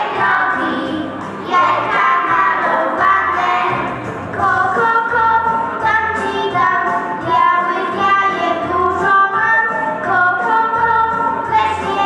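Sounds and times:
children singing through microphone: 0:00.0 - 0:12.0.

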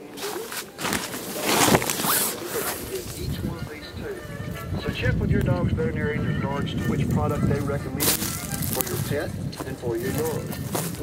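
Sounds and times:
tent zipper pulled: 0:00.0 - 0:03.4
rustling: 0:00.0 - 0:04.7, 0:07.2 - 0:11.0
faint voices: 0:00.0 - 0:11.0.

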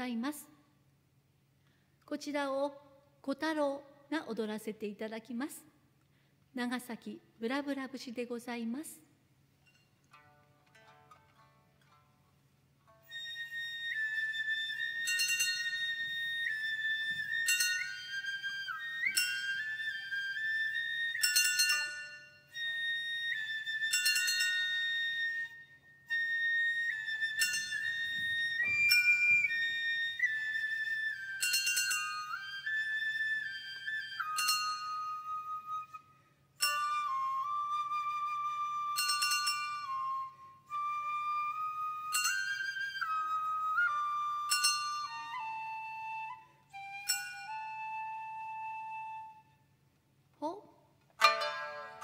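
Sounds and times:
shamisen plucking: 0:09.6 - 0:36.0, 0:36.6 - 0:48.7, 0:51.1 - 0:52.0
bamboo flute melody: 0:12.9 - 0:49.8, 0:51.2 - 0:52.0.

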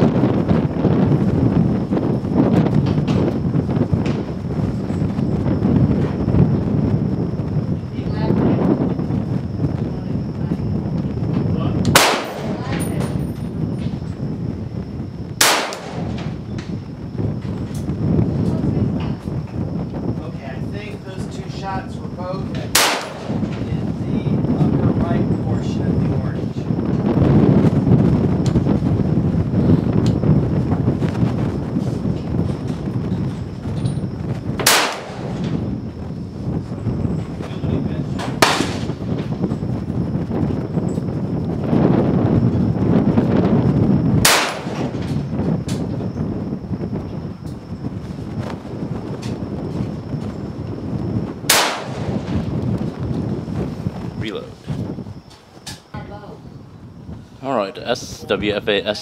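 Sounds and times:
rifle shots: 0:11.9 - 0:12.8, 0:15.4 - 0:16.4, 0:22.7 - 0:23.5, 0:34.6 - 0:35.6, 0:38.4 - 0:38.9, 0:44.2 - 0:45.1, 0:51.5 - 0:52.4.

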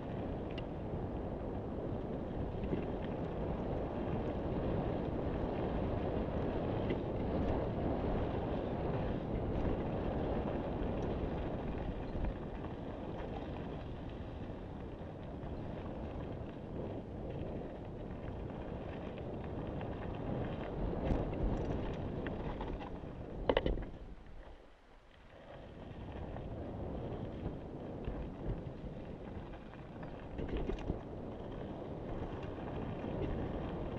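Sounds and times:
wind buffeting microphone: 0:00.0 - 0:24.6, 0:25.6 - 0:33.9
tyres rumbling on dirt trail: 0:00.0 - 0:33.9
bike clattering over rough ground: 0:05.3 - 0:24.6, 0:27.1 - 0:33.9.

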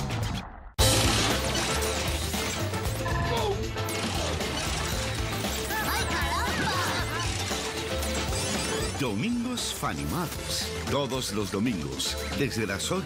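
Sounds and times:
upbeat music: 0:00.8 - 0:13.0
slot machine reels ratcheting: 0:03.8 - 0:09.0.

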